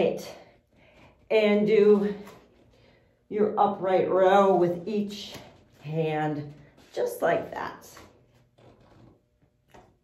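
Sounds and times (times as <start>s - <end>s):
soft movement noise: 0.0s - 10.0s.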